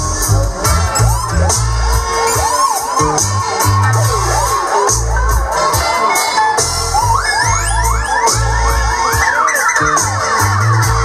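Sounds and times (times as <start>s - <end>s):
dub reggae on sound system: 0.0s - 11.0s
crowd cheering: 0.2s - 11.0s.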